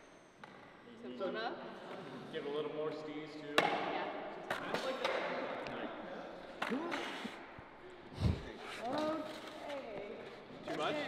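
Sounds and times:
skateboard thud on concrete: 3.6s - 4.0s.

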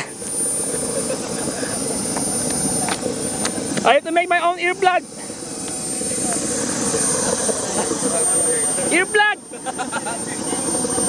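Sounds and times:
model jet turbine whining: 0.0s - 11.0s.

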